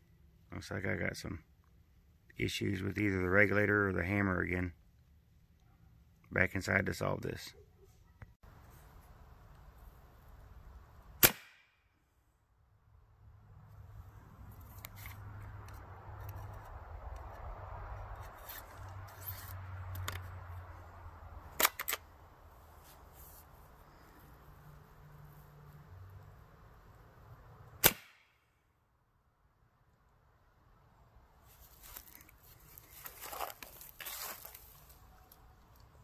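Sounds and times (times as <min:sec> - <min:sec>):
sharp cracks: 0:11.1 - 0:11.9, 0:21.5 - 0:22.1, 0:27.8 - 0:28.5.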